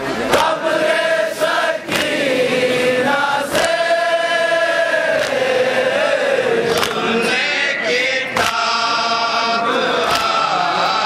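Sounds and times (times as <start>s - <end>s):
men chanting a lament: 0.2s - 11.0s
chest-beating slaps: 1.9s - 2.2s.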